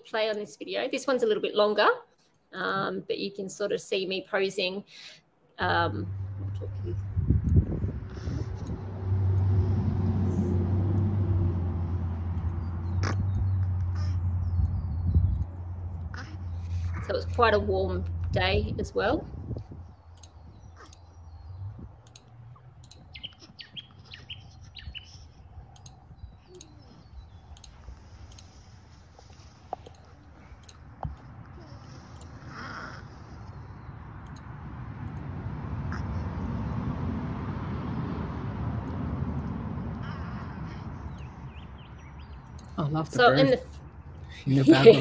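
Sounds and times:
birds chirping: 5.7s - 45.0s.

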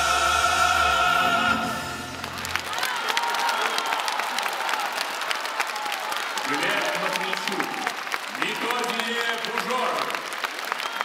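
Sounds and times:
music: 0.0s - 2.7s
audience applauding: 1.7s - 11.0s.

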